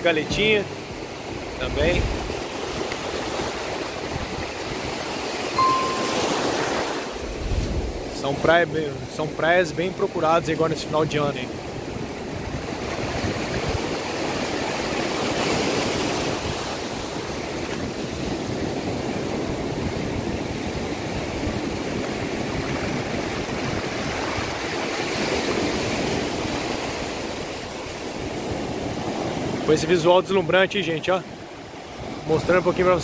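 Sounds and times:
ocean surf breaking on sand: 0:00.0 - 0:33.0.

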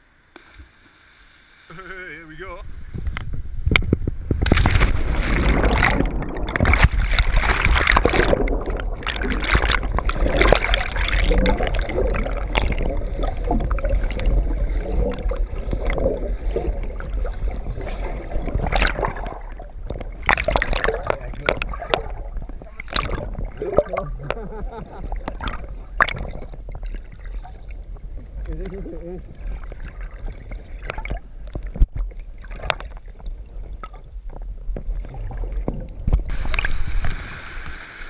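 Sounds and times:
muffled underwater river rushing: 0:02.6 - 0:38.0
sharp knocks and splashes: 0:03.8 - 0:27.7, 0:29.4 - 0:34.0.

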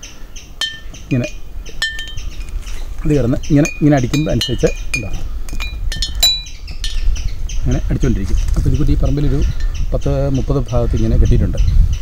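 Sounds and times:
glass bottles clinking: 0:00.6 - 0:02.5, 0:03.5 - 0:07.0.

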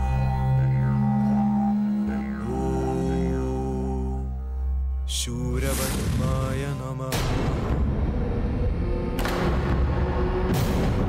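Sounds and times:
deep low drone: 0:00.0 - 0:11.0.

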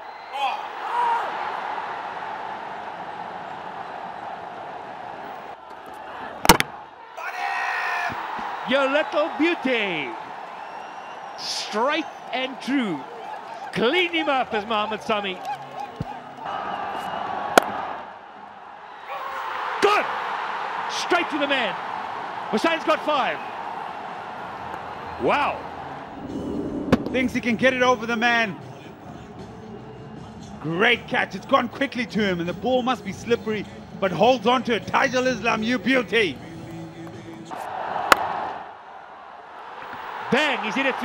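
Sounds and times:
crowd noise: 0:00.0 - 0:41.0
cricket bat striking ball: 0:06.4 - 0:06.8, 0:17.5 - 0:17.8, 0:38.1 - 0:38.4.

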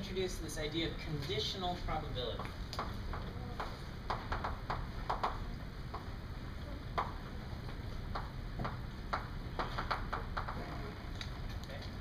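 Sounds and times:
low room hum: 0:00.0 - 0:12.0
chalk tapping on blackboard: 0:02.4 - 0:06.1.

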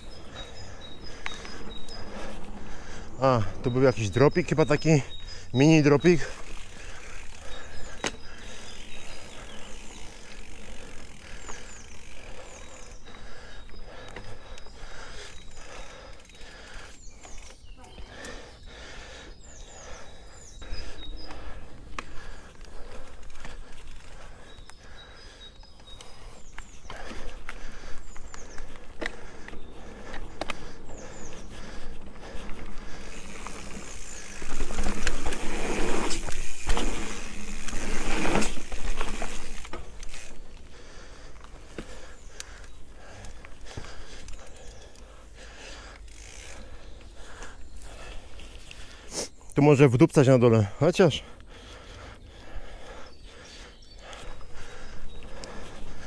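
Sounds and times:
bike tyres on dirt: 0:00.0 - 0:56.0
birds chirping: 0:00.0 - 0:56.0
bike frame and chain rattling: 0:28.6 - 0:41.3.

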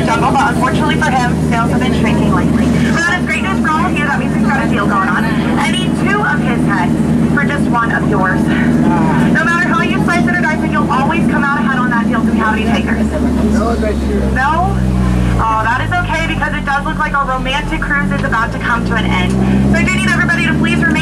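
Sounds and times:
boat motor humming: 0:00.0 - 0:21.0
man talking: 0:13.3 - 0:14.4.

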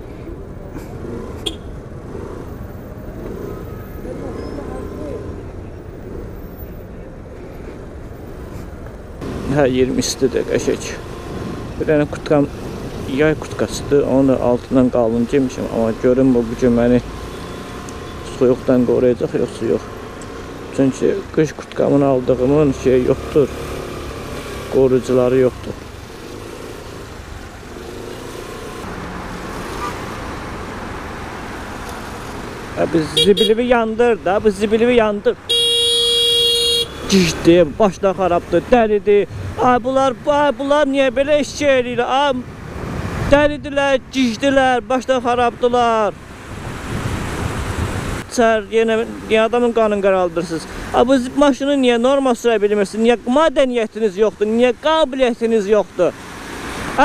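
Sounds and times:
wind and road noise: 0:00.0 - 0:57.0.

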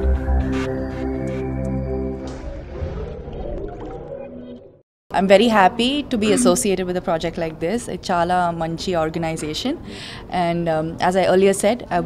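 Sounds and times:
gliding synthesizer jingle tones: 0:06.2 - 0:06.8.

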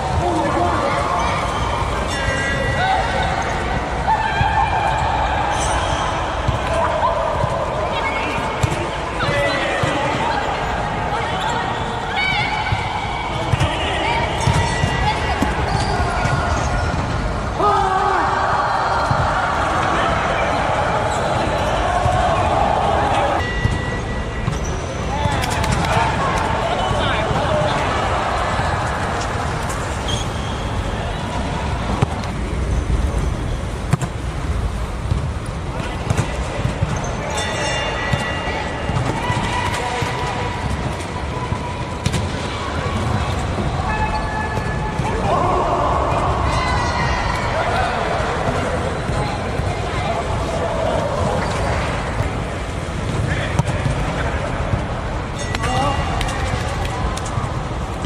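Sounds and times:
volleyballs hit and bouncing: 0:00.0 - 0:11.2, 0:12.4 - 0:17.6, 0:18.9 - 0:28.0, 0:31.2 - 0:45.5, 0:47.4 - 0:58.0
players' indistinct voices: 0:00.0 - 0:58.0.

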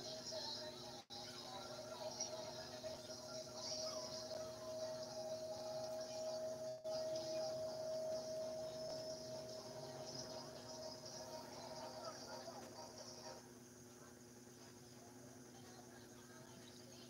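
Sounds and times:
night insects chirring: 0:00.0 - 0:17.0
low hum: 0:01.7 - 0:13.5.

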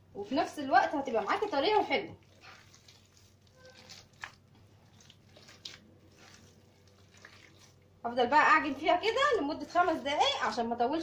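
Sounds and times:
dough squishing by hand: 0:00.0 - 0:11.0.

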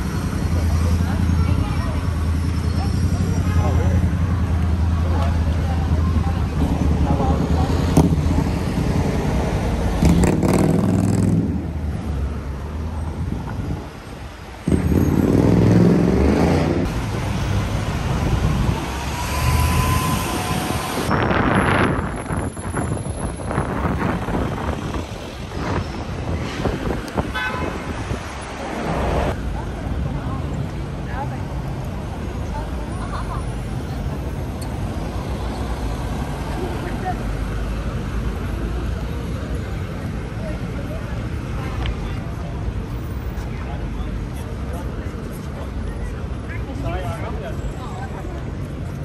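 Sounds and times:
vehicles passing: 0:00.0 - 0:49.0.

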